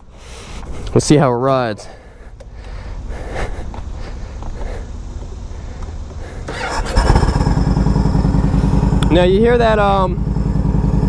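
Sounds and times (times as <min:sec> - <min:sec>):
motorcycle engine revving: 0:06.5 - 0:11.0.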